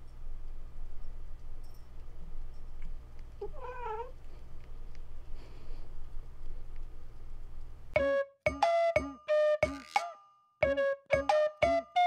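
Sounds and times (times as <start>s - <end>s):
cat meowing: 3.4s - 4.2s.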